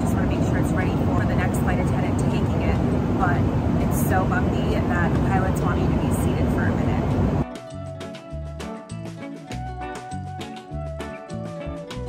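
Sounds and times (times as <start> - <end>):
jet cabin rumble and hiss: 0.0 - 7.4
background music: 6.8 - 12.0.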